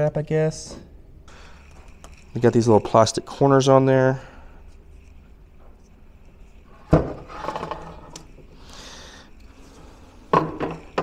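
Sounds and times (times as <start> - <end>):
scraping and rubbing: 4.6 - 11.0.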